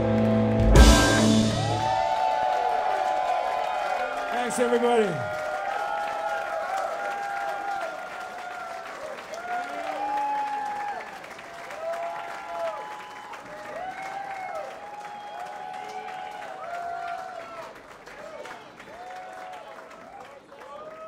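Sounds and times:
audience applauding and cheering: 0.0 - 21.0
whoops: 1.6 - 4.3, 5.2 - 17.7, 18.4 - 21.0.

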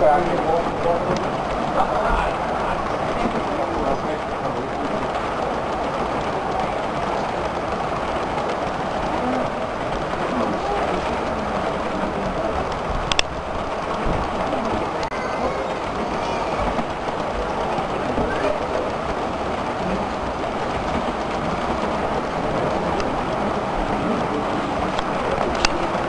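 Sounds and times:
model train wheels rattling: 0.0 - 26.0.

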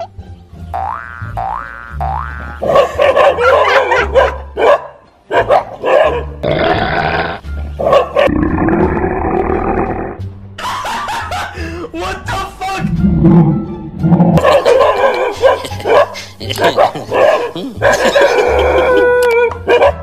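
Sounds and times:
background music: 0.0 - 20.0
cartoon boing effects: 0.8 - 2.6
dog barking: 2.6 - 6.4, 7.8 - 8.3, 14.4 - 18.5, 19.6 - 20.0.

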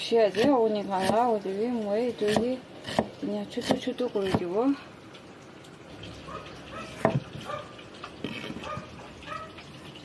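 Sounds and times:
cleaver knocking on chopping board: 7.0 - 7.2.

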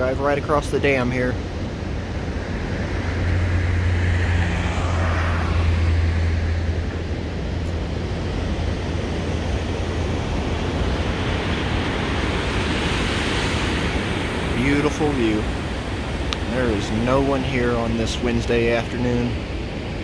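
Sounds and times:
steady rushing background: 0.0 - 20.0
truck driving past: 1.4 - 12.2.

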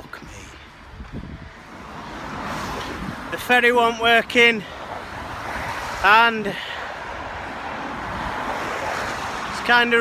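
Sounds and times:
wind on microphone: 0.7 - 1.7, 2.5 - 3.3
vehicle passing: 1.2 - 10.0.

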